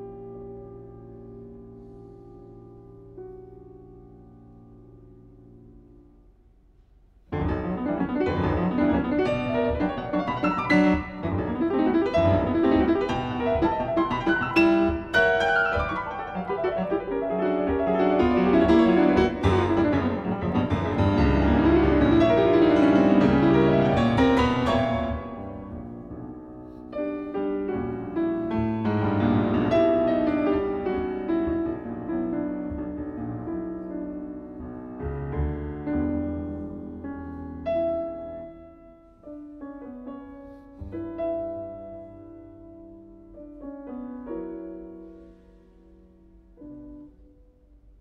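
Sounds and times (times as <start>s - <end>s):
solo piano music: 7.2s - 48.0s.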